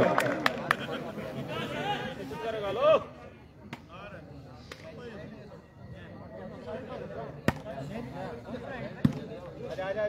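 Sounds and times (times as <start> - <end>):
murmur of spectators' voices: 0.0 - 10.0.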